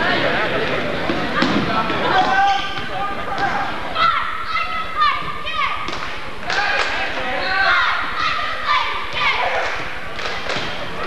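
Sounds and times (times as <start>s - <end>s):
voices in gym: 0.0s - 11.0s.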